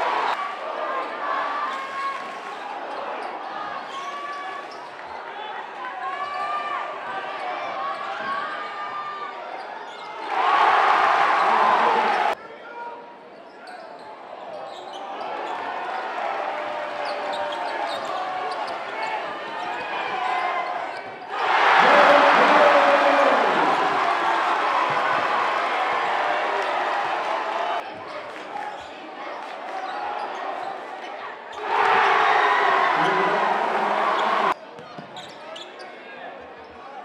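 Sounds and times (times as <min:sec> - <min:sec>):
crowd cheering: 0:00.0 - 0:09.4, 0:10.1 - 0:12.4, 0:15.0 - 0:34.6
crowd chatter: 0:06.7 - 0:37.0.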